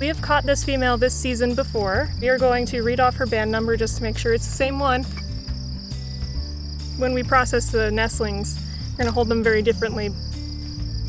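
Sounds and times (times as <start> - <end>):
background music low notes: 0.0 - 11.0
high-pitched insect buzz: 0.0 - 11.0.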